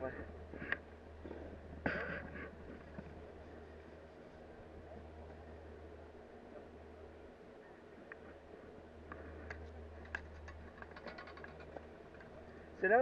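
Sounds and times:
chairlift low hum: 0:00.0 - 0:13.0
faint distant voices: 0:00.0 - 0:13.0.

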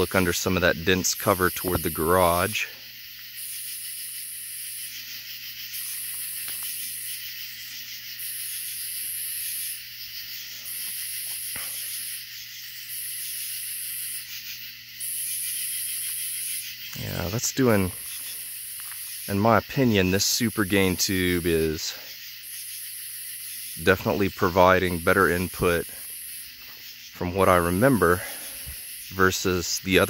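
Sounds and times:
high rasping insect buzz: 0:00.0 - 0:30.0
insect hiss: 0:00.0 - 0:30.0.

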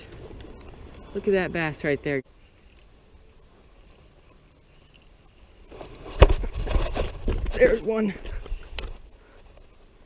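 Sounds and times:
camera jostling noise: 0:05.7 - 0:09.0.

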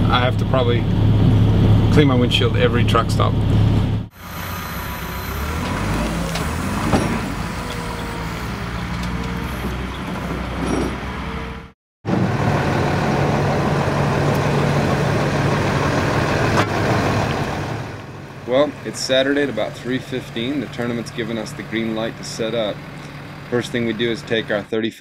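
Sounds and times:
truck engine running: 0:00.0 - 0:24.7.

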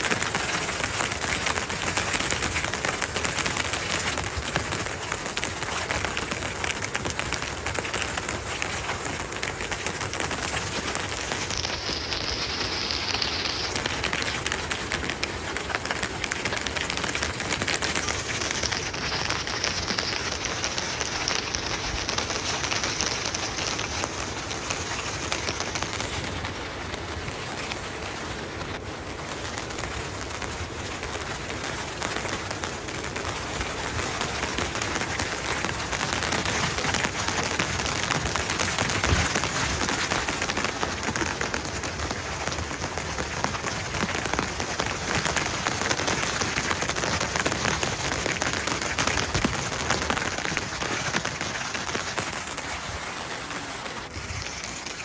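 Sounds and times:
steady rain hiss: 0:00.0 - 0:55.0.

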